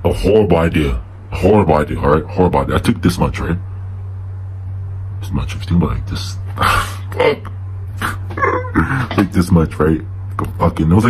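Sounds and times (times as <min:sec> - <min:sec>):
steady low hum: 0:00.0 - 0:11.0
man laughing: 0:06.5 - 0:09.5.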